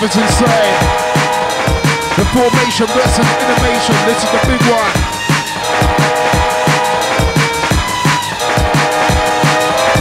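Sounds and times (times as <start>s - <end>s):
drum and bass music: 0.0s - 10.0s.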